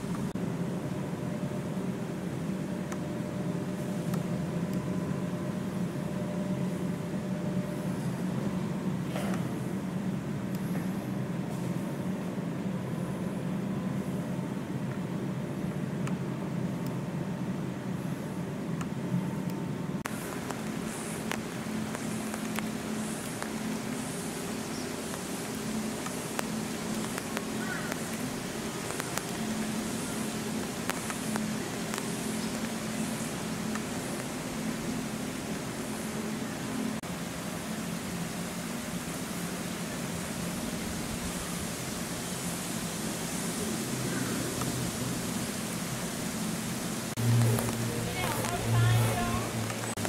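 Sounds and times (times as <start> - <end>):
low hum: 43.6 - 50.0
faint high-pitched pulsing: 47.2 - 50.0.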